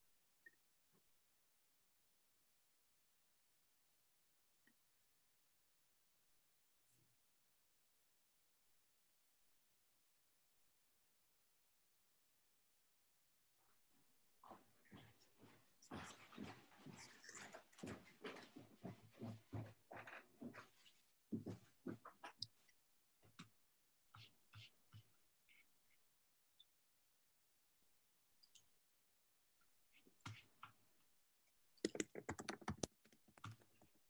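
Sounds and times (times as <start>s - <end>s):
computer keyboard typing: 31.8s - 34.0s.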